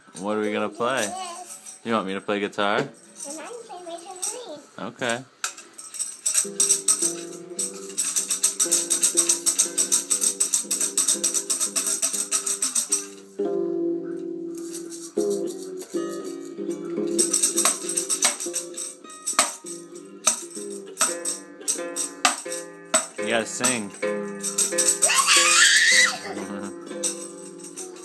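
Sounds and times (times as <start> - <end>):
toy tambourine jingling: 0.0 - 4.6, 5.4 - 13.4, 14.5 - 28.0.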